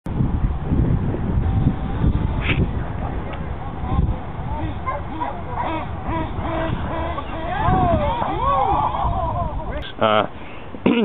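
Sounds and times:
wind rumble on microphone: 0:00.1 - 0:10.0
distant voices calling: 0:01.2 - 0:10.8.

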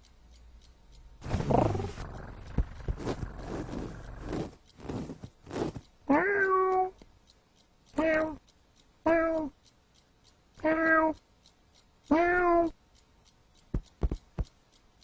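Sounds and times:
faint steady ticking: 0:00.0 - 0:15.0
cat meowing: 0:06.1 - 0:06.9, 0:08.0 - 0:08.4, 0:10.6 - 0:11.2, 0:12.1 - 0:12.8
quick taps: 0:13.6 - 0:14.6.

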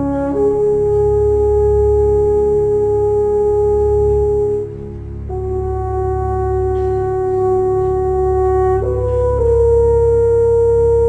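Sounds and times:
french horns holding a note: 0:00.0 - 0:11.0
orchestra playing sustained notes: 0:00.0 - 0:11.0.

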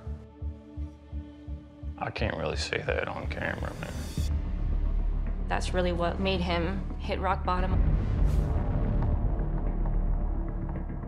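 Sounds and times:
low bass pulse: 0:04.3 - 0:11.0.

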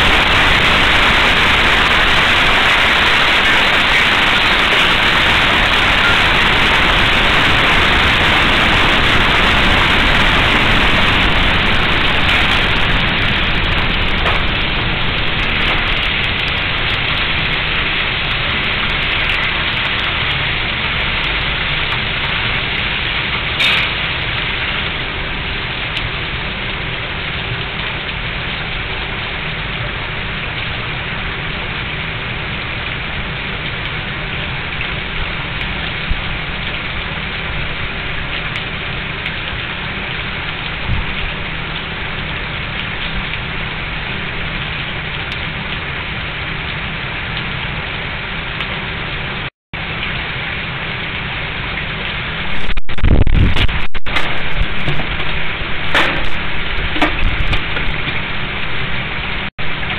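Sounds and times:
steady rushing noise: 0:00.0 - 0:26.5, 0:49.1 - 0:59.9.

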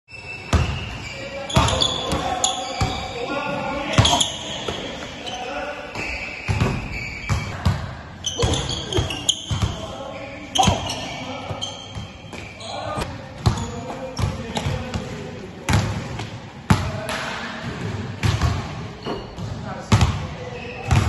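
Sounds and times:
voices talking: 0:00.1 - 0:21.0
basketballs bouncing on gym floor: 0:00.4 - 0:03.2, 0:03.9 - 0:09.9, 0:10.5 - 0:21.0.

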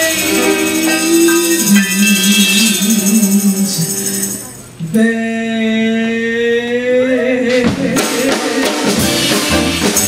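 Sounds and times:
jazz band playing: 0:00.0 - 0:04.8, 0:07.5 - 0:10.0
woman singing: 0:00.0 - 0:09.0.

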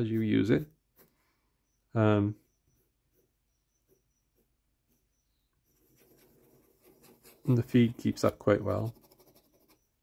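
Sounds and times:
pen nib scratching on paper: 0:05.7 - 0:10.0.

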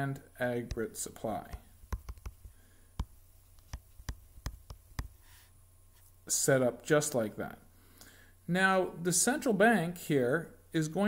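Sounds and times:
low electrical hum: 0:00.0 - 0:11.0
digital pen tapping on surface: 0:01.5 - 0:05.2.

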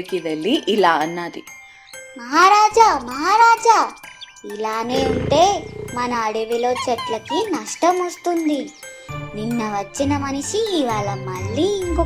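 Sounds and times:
light children's music: 0:00.0 - 0:05.2, 0:06.0 - 0:12.0.

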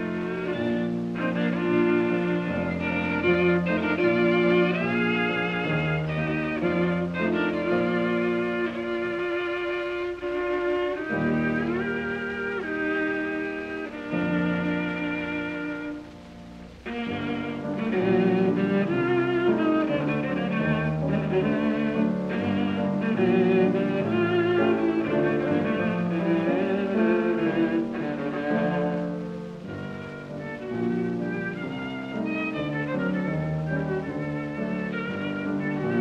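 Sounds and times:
piano accompaniment: 0:00.0 - 0:36.0
viola bowed melody: 0:00.0 - 0:36.0.

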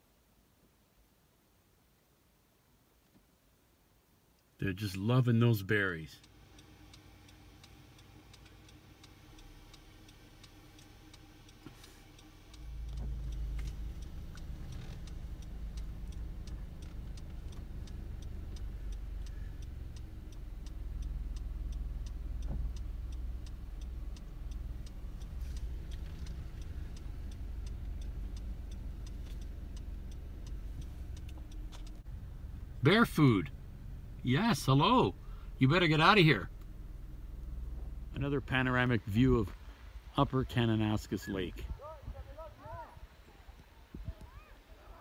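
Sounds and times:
car engine rumbling: 0:04.6 - 0:45.0
fast even ticking: 0:06.2 - 0:39.4.

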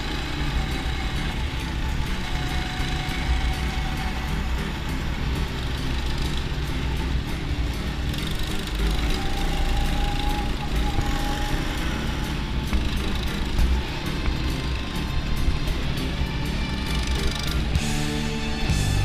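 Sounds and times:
go-kart engine running: 0:00.0 - 0:19.0.

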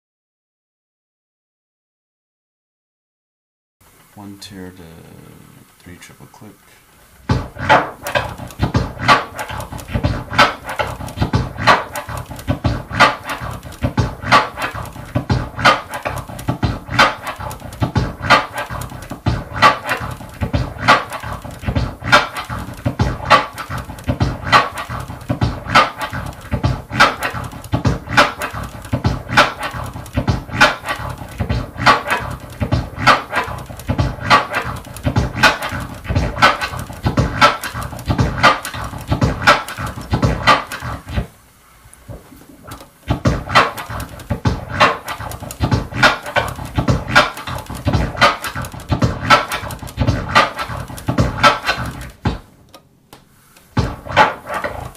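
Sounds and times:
vinyl record scratching: 0:04.2 - 0:52.6, 0:53.5 - 0:54.9
kick and snare drum hits: 0:07.2 - 0:41.3, 0:42.1 - 0:52.5, 0:53.7 - 0:54.9.

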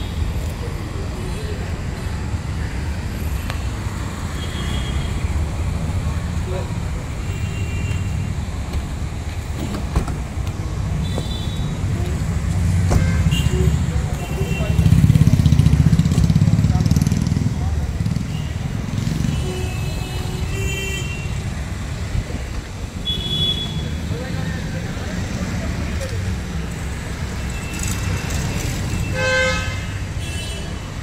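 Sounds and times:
people talking in background: 0:00.0 - 0:04.2, 0:11.6 - 0:19.4, 0:23.7 - 0:29.1
car engine and traffic rumble: 0:00.0 - 0:31.0.

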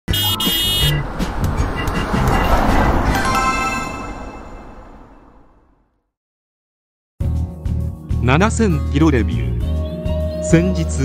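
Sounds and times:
cartoon car horn honking: 0:00.1 - 0:01.1
car driving sound effect: 0:00.1 - 0:05.9.

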